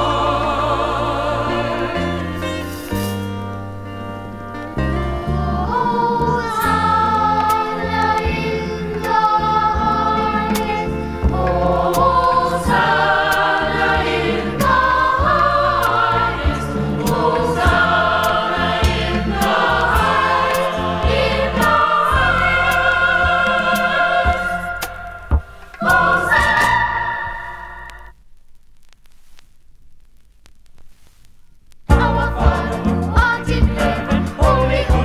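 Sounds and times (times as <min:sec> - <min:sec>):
choir singing: 0:00.0 - 0:02.8, 0:05.0 - 0:28.1, 0:31.9 - 0:35.0
band accompaniment: 0:15.4 - 0:28.1.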